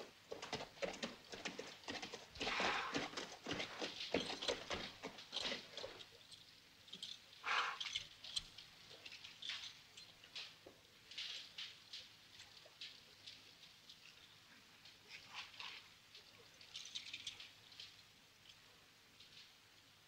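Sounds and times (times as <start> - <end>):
horse hooves galloping on dry ground: 0.0 - 19.6.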